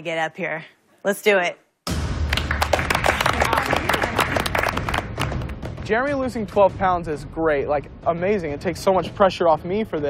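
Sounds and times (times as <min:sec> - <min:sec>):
background music with low bass: 0:01.9 - 0:10.0
group of people clapping: 0:02.2 - 0:05.7.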